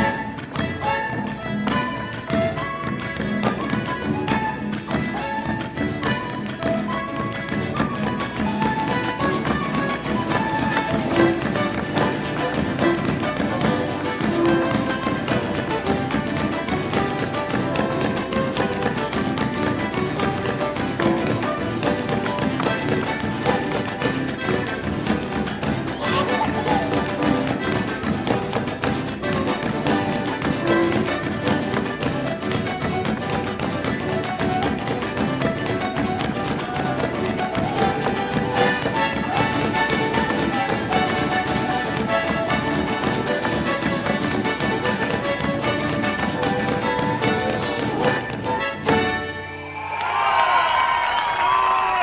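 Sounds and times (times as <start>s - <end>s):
folk music: 0.0s - 52.0s.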